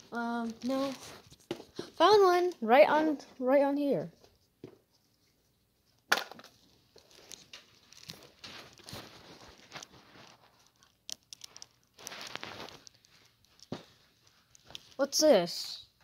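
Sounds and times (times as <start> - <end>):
plastic rustling and crinkling: 0.0 - 3.3, 6.3 - 15.1.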